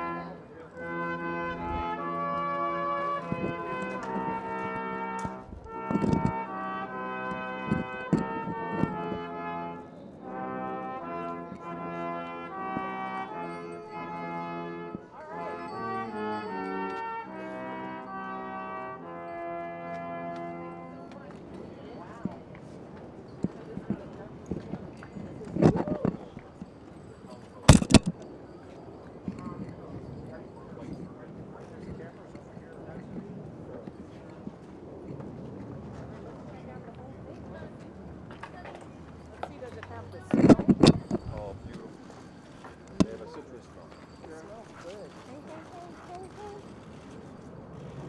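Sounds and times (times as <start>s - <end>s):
brass ensemble playing: 0.0s - 22.5s, 27.7s - 28.1s
hooves clip-clopping on pavement: 0.0s - 48.0s
murmur of voices: 0.0s - 48.0s.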